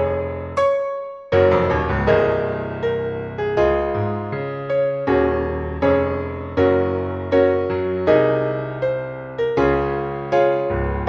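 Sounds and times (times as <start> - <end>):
solo piano playing hymn chords: 0.0 - 11.0.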